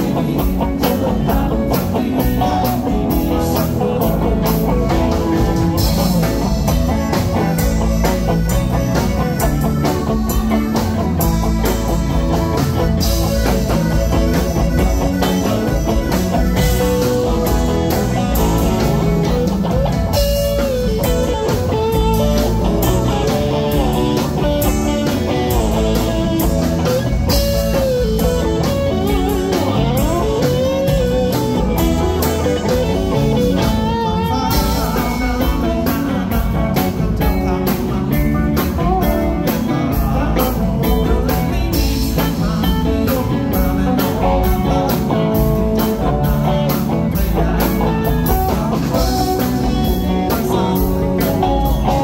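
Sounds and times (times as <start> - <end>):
lead electric guitar bending notes: 0.0 - 52.0
rock band playing: 0.0 - 52.0.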